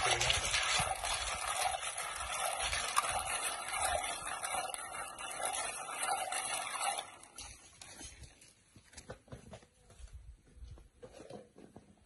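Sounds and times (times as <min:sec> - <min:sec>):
hands washing snails in water: 0:00.0 - 0:07.9.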